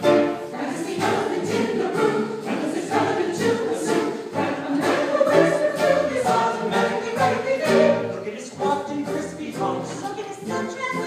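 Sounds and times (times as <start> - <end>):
keyboard accompaniment: 0.0 - 11.0
mixed choir singing: 0.0 - 11.0.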